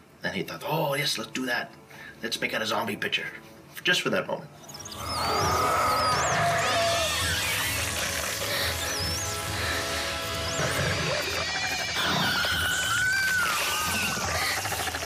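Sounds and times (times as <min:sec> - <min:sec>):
high warbling squeals: 0:04.6 - 0:15.0
tense film score music: 0:04.6 - 0:15.0.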